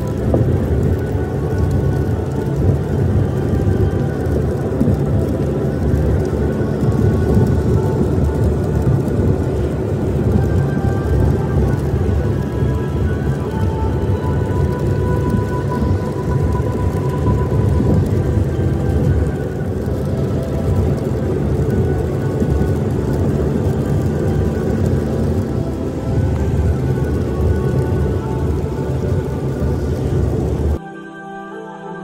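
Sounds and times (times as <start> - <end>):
road and rain noise inside car: 0.0 - 30.8
background music: 0.0 - 32.0.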